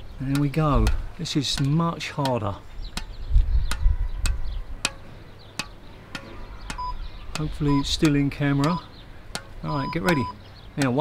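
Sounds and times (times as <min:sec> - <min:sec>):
squash ball bouncing on racket strings: 0:00.2 - 0:11.0.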